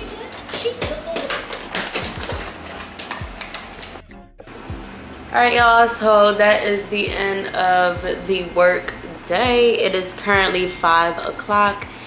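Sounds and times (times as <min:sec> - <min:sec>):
music with deep bass notes: 0:00.8 - 0:09.7, 0:10.3 - 0:11.2.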